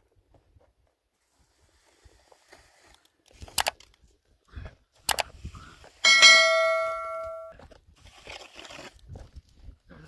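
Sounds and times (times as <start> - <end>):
sharp click: 3.5 - 3.8, 5.1 - 5.3
bright bell chime: 6.1 - 7.5.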